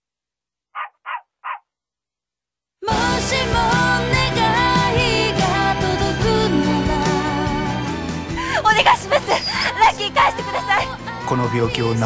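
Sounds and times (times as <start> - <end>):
dog barking: 0.8 - 1.7.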